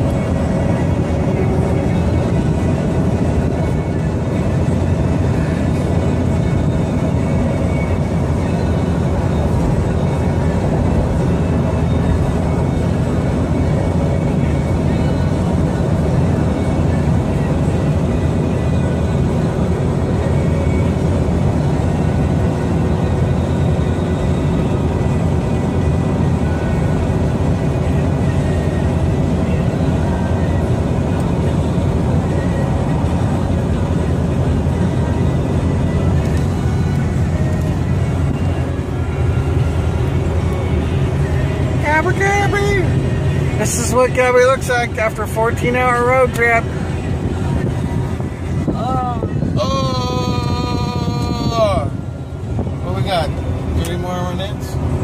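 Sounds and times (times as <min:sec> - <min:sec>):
car engine and tyre drone: 0:00.0 - 0:55.0.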